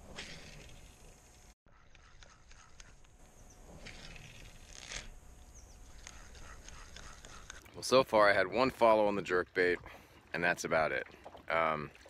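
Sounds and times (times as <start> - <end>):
lake ambience: 0.0 - 12.0.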